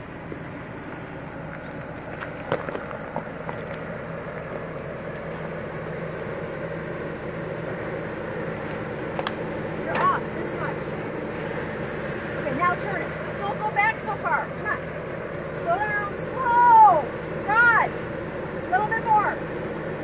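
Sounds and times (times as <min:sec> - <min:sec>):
car engine idling: 0:00.0 - 0:20.0
stones clicking under tyres: 0:00.2 - 0:06.5, 0:08.6 - 0:10.2.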